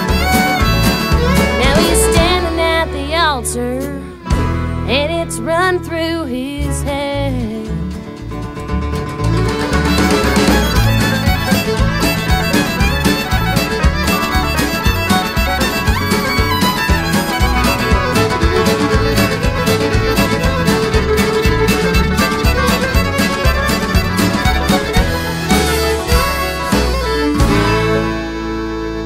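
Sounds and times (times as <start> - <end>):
country band playing: 0.0 - 29.0
fiddle: 0.0 - 29.0.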